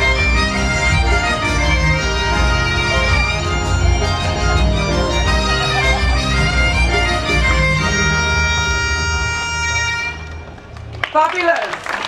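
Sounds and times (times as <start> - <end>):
dance music with sustained melody: 0.0 - 10.1.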